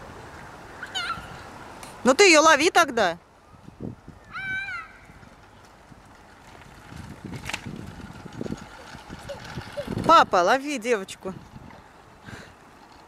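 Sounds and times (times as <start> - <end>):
stroller wheels rumbling on asphalt: 0.0 - 13.0
toddler squealing: 0.8 - 1.4, 4.3 - 5.0.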